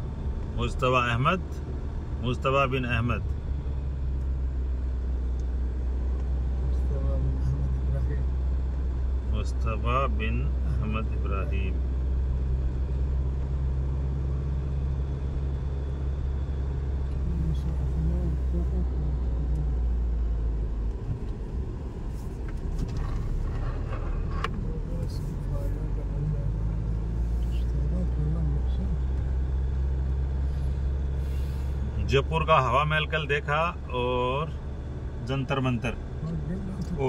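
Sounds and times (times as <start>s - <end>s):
car engine and tyres drone: 0.0s - 37.0s.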